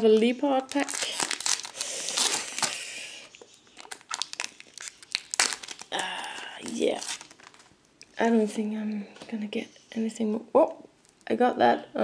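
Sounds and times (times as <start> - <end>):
foil wrapper tearing and crinkling: 0.6 - 2.8, 3.8 - 7.7.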